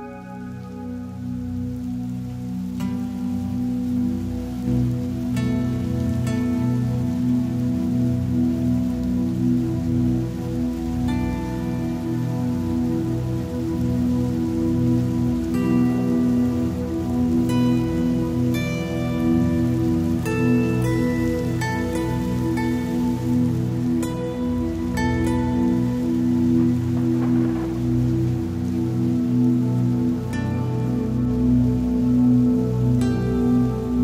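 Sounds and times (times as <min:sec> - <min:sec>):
falling rain: 0:00.0 - 0:34.0
meditation music drone: 0:00.0 - 0:34.0.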